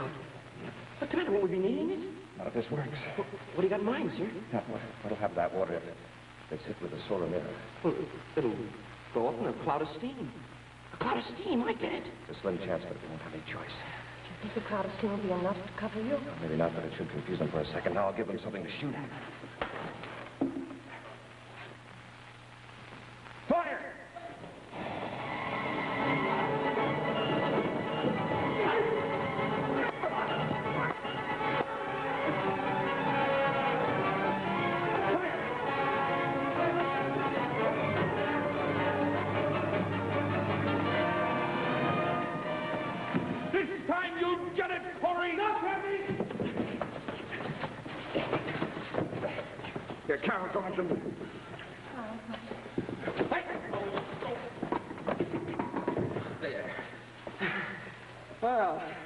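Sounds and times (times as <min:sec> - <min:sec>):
dramatic music: 0:25.0 - 0:43.5
fistfight scuffle: 0:46.0 - 0:50.1.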